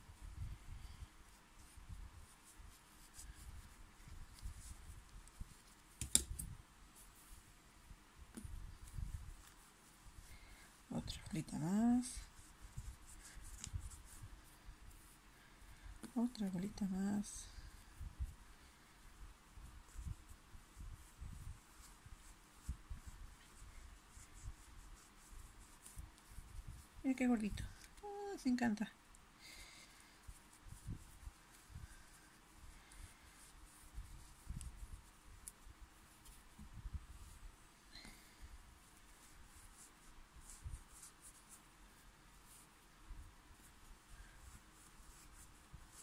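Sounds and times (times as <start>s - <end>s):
faint rustling: 0.0s - 46.0s.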